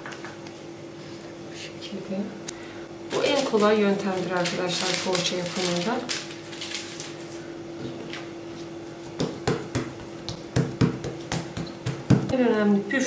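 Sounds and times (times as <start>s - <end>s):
faint steady hum: 0.0s - 13.0s
light taps and pats on dough: 9.1s - 12.4s.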